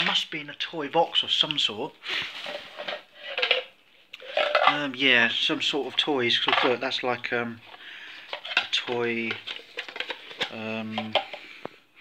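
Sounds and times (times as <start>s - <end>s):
plastic items knocking: 0.0s - 0.3s, 2.2s - 11.7s
plastic bag rustling and crinkling: 1.2s - 11.4s.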